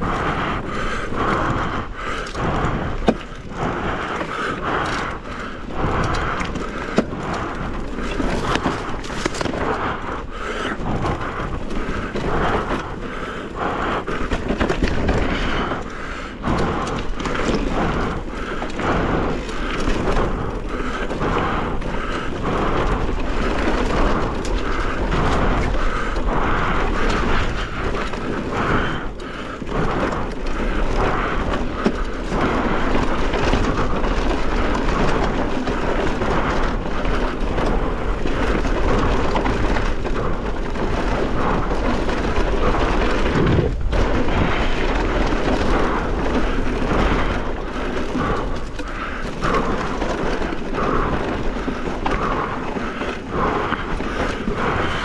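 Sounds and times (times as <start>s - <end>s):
bike rattling clicks and knocks: 0.0s - 55.0s
wind over microphone: 0.0s - 55.0s
bike tyres crunching stones: 0.3s - 55.0s.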